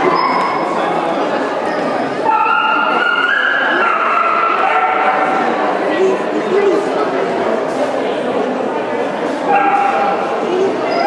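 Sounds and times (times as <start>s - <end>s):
murmur of crowd chatter: 0.0s - 11.0s
dog whining: 10.5s - 11.0s.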